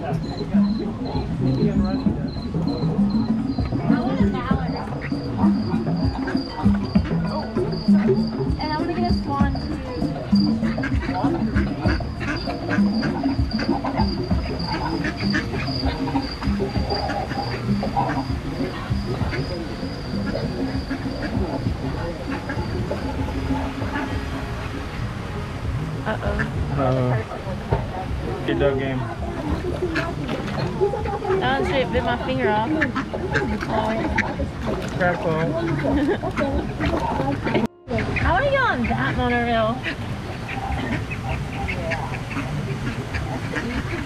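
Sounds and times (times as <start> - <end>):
background music: 0.0 - 44.0
voices: 0.0 - 44.0.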